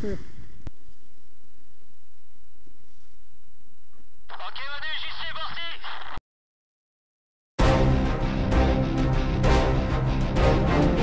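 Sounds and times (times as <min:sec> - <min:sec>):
voice over two-way radio: 0:04.3 - 0:06.2.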